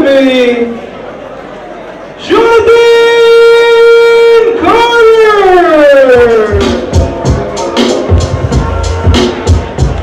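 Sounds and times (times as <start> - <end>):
announcer calling through microphone: 2.2 - 7.0.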